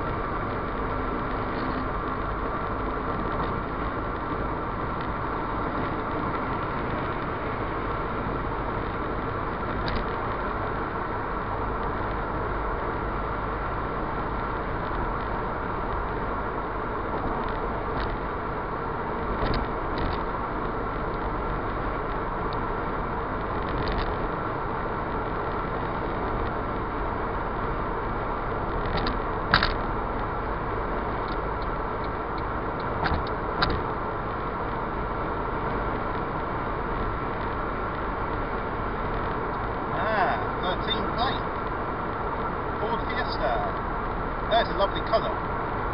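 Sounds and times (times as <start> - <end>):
car road and engine noise: 0.0 - 45.9.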